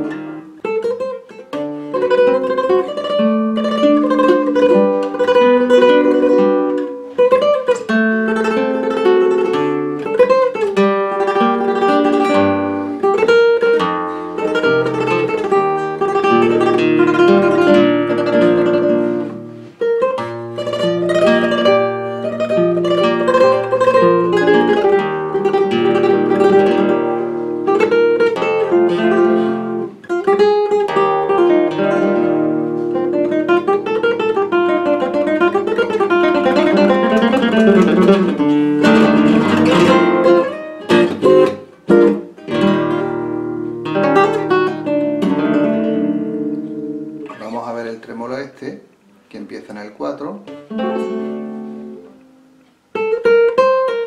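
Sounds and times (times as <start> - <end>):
flamenco guitar playing: 0.0 - 54.0.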